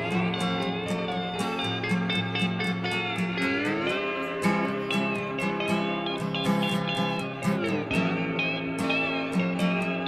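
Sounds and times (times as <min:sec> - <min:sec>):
lead electric guitar gliding notes: 0:00.0 - 0:10.0
repeating rhythm guitar: 0:00.0 - 0:10.0.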